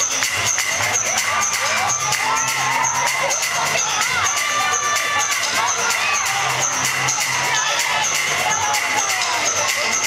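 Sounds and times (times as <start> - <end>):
crowd shouting and cheering: 0.0 - 10.0
loud electro house music: 0.0 - 10.0.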